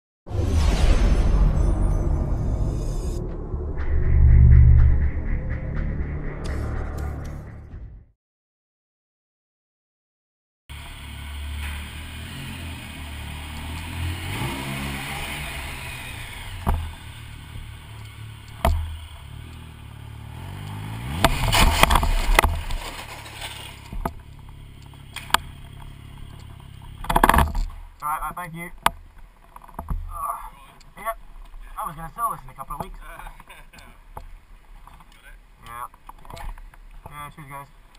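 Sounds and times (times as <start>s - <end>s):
motorcycle engine running: 10.7s - 28.0s
motorcycle crash scraping and clattering: 20.6s - 27.9s.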